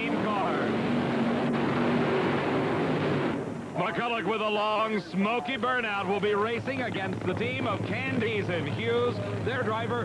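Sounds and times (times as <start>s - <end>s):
engine at high revs: 0.0s - 3.5s.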